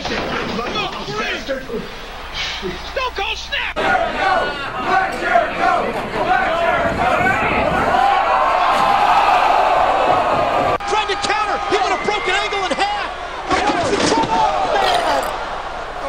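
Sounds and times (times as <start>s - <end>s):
arena crowd cheering: 3.0s - 16.0s.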